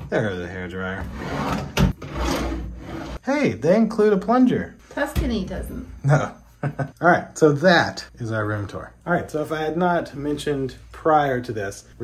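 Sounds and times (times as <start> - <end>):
wooden drawers sliding on runners: 1.0 - 3.2.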